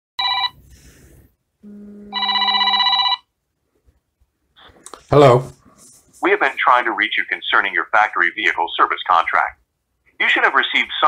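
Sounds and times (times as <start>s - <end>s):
telephone ringing: 0.2s - 0.6s, 2.1s - 3.3s.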